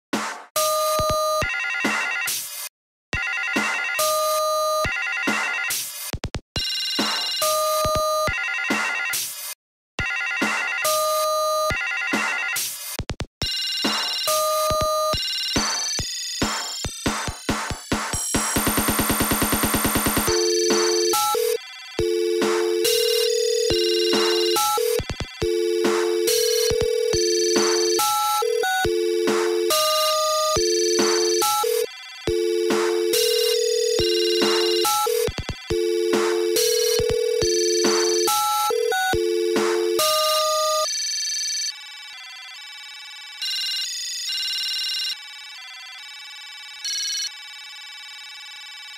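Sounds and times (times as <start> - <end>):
electronic music with phone rings: 0.6 - 2.5, 3.2 - 48.9
stuttering two-note telephone tone: 20.3 - 40.9.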